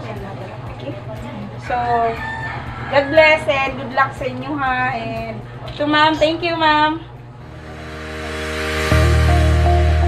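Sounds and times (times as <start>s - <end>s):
woman speaking: 0.0s - 7.1s
rooster crowing: 1.6s - 3.6s.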